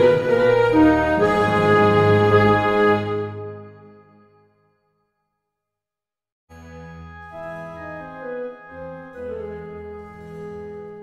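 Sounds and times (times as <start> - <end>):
slow orchestral music: 0.0 - 4.5, 6.5 - 11.0.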